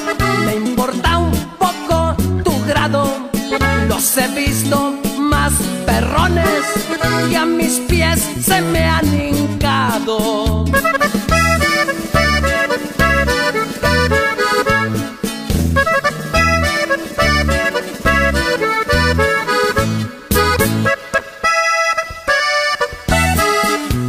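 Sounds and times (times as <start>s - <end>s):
accordion playing quick runs: 0.0s - 1.0s, 6.2s - 7.9s, 10.7s - 24.0s
steady bass beat: 10.5s - 21.2s, 22.2s - 24.0s.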